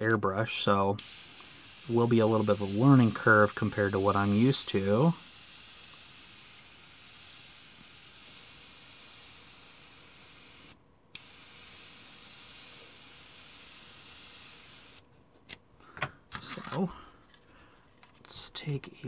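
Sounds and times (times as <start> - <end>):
airbrush spraying hiss: 1.0 - 15.0.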